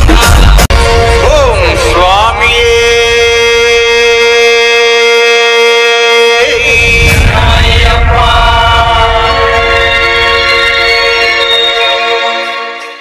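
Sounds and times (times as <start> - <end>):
person chanting: 2.4 - 10.2.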